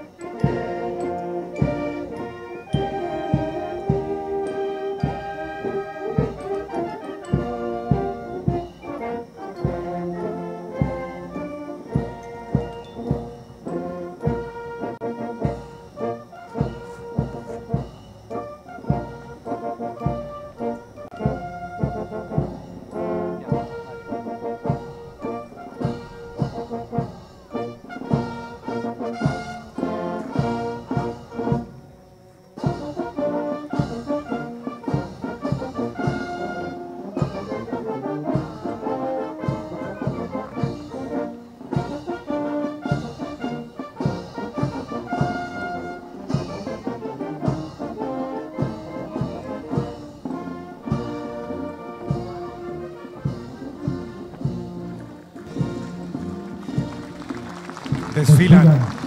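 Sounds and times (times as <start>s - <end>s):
brass band playing a march: 0.0s - 59.0s.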